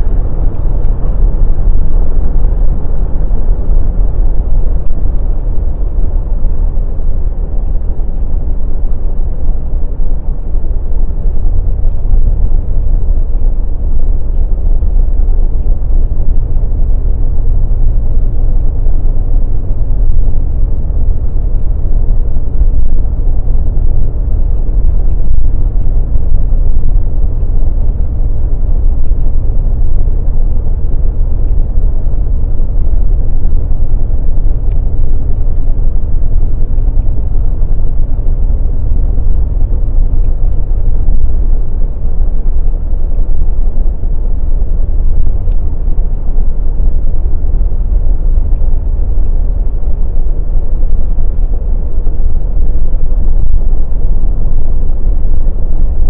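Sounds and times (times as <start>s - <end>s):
car interior road noise: 0.0s - 56.0s.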